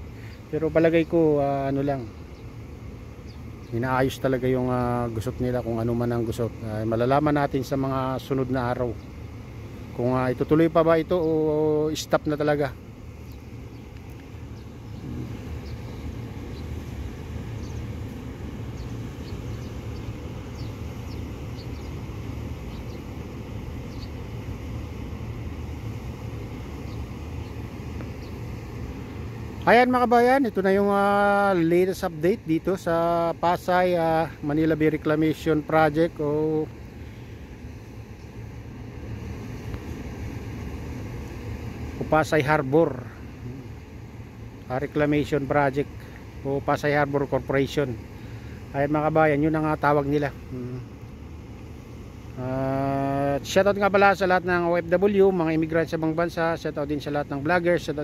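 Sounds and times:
low rumble of traffic: 0.0 - 58.0.

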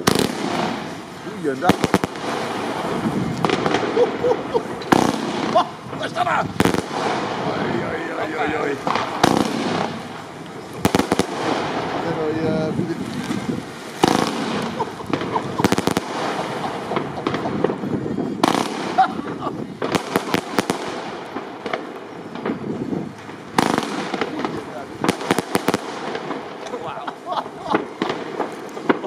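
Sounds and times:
firework crackling and banging: 0.0 - 29.0.

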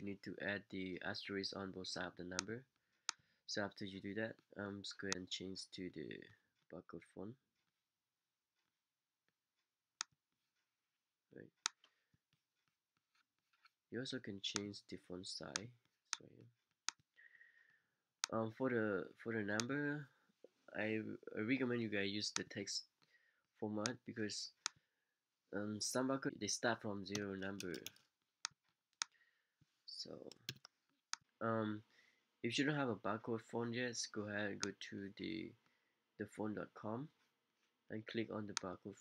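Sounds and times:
computer mouse clicks: 27.1 - 29.2, 30.2 - 31.2.

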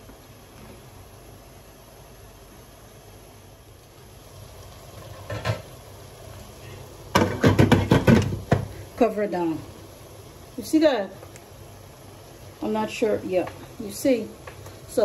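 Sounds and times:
vegetables sizzling in oil: 0.0 - 15.0.

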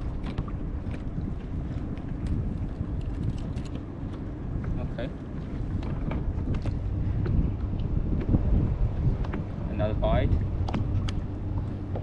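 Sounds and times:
water: 0.0 - 12.0
wind rumble: 0.0 - 12.0.

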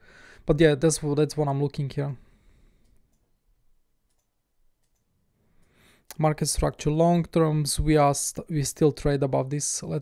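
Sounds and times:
computer mouse clicks: 4.1 - 5.8.

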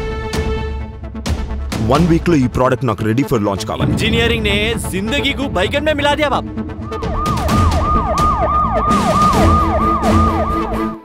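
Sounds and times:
low pulsing bass: 3.8 - 10.6
electronic siren yelping: 6.4 - 11.0.

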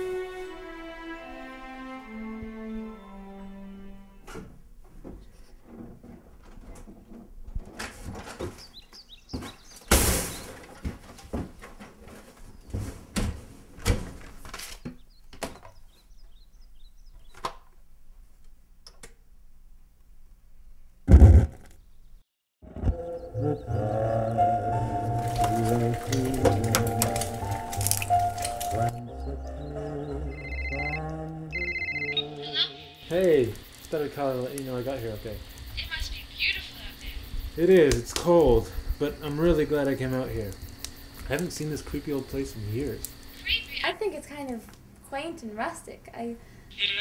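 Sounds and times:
door opening with knocks: 12.8 - 15.8.

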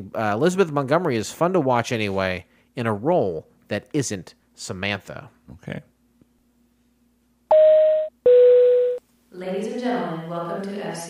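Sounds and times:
cabin chime tone: 7.5 - 9.0.

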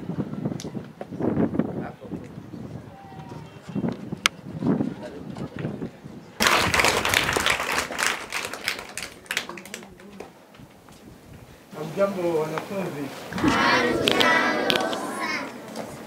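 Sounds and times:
faint voices: 13.3 - 16.0
schoolchildren crowd noise burst: 13.3 - 16.0.

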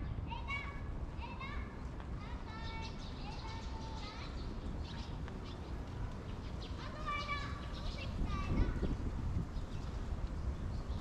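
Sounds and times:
children calling out in distance: 5.8 - 9.1.

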